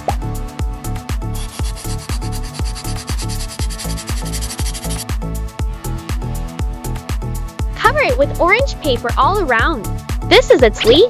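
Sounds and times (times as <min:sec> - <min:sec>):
background music with beat: 0:00.0 - 0:08.2
nail file scratching cardboard: 0:01.4 - 0:05.1.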